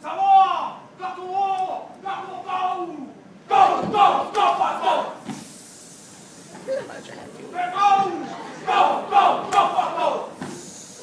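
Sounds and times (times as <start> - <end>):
boys shouting a chant: 2.1 - 5.2, 7.6 - 10.4.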